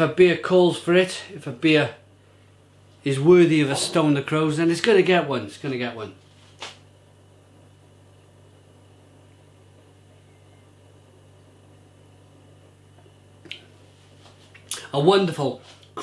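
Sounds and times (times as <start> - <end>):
person speaking: 3.0 - 6.2.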